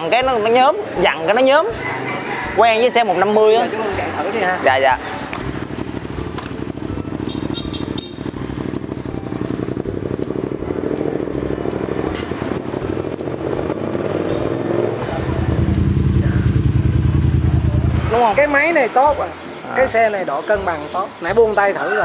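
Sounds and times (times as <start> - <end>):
motorcycle engine revving: 4.0 - 18.8.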